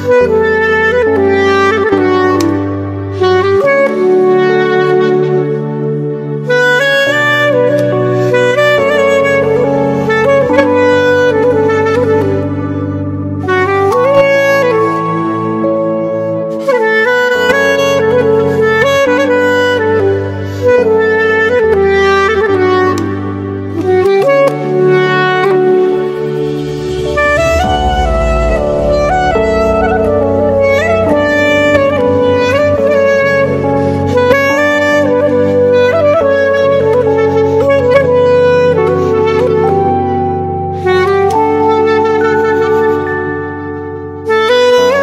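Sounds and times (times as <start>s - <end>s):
slow sad clarinet melody: 0.0s - 45.0s
sustained low accompaniment notes: 22.9s - 36.2s.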